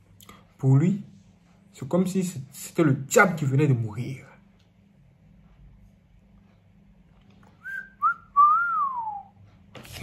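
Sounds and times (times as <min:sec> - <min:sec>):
person whistling: 0:07.6 - 0:09.4.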